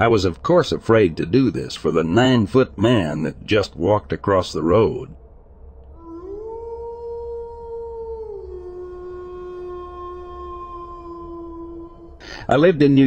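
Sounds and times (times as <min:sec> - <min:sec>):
long howl: 0:05.9 - 0:12.8.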